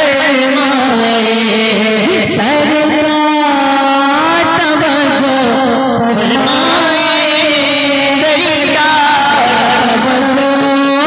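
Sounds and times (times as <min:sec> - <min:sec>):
man singing through pa: 0:00.0 - 0:11.0.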